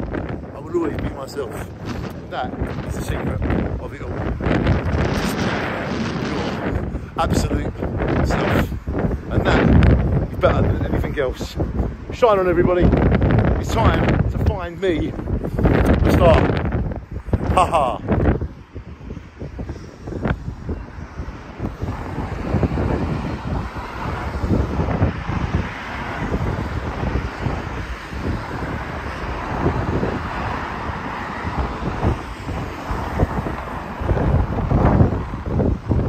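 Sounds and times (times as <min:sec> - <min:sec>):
wind buffeting microphone: 0:00.0 - 0:36.0
cars driving past: 0:18.2 - 0:36.0.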